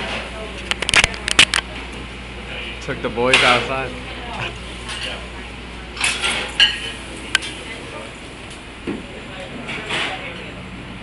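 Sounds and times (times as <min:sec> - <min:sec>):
background chatter: 0:00.0 - 0:11.0
cutlery clinking on plates: 0:06.0 - 0:07.6.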